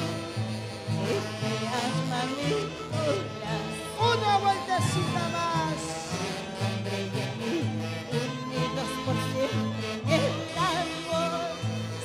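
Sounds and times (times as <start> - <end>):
saxophone melody: 0.0 - 12.0.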